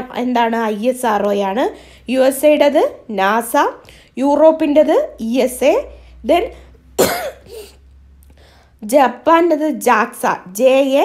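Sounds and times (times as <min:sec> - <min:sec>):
person clearing throat: 0:07.0 - 0:07.8.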